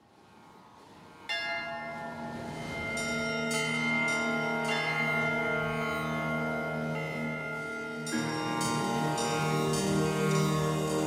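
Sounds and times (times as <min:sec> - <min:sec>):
background music swell: 0:00.4 - 0:11.0
bell-like chime: 0:01.3 - 0:11.0.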